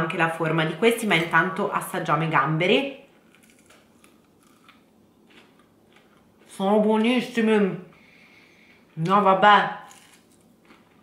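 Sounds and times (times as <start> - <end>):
faint crunching and chewing: 3.1 - 6.6, 9.8 - 11.0.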